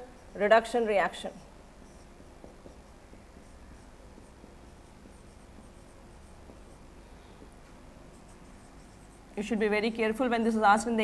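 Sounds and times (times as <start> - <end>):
marker pen scratching on whiteboard: 0.0 - 9.5
low room hum: 0.0 - 11.0.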